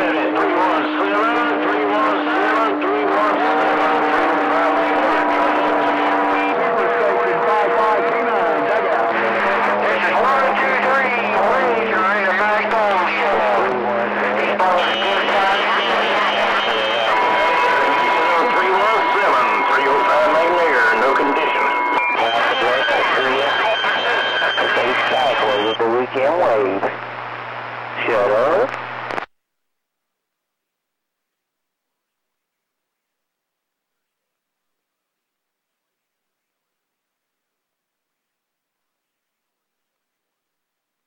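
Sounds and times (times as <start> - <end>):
garbled overlapping radio voices: 0.0 - 29.3.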